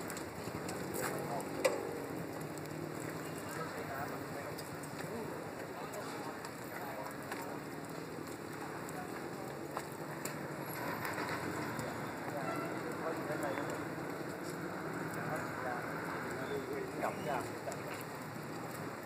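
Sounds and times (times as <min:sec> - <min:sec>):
burning power cables hissing: 0:00.0 - 0:19.0.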